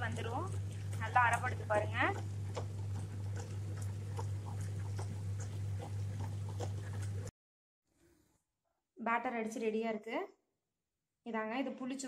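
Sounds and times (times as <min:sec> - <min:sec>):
wet grinder motor hum: 0:00.0 - 0:07.3.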